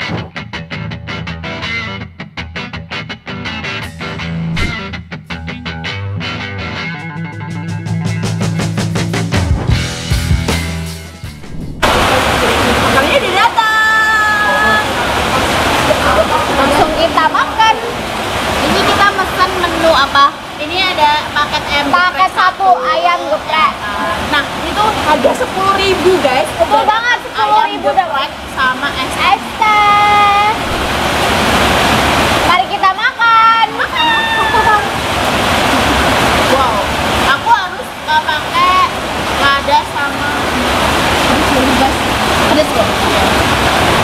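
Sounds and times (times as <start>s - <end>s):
rock music: 0.0s - 11.9s
heavy rain hissing: 11.3s - 44.0s.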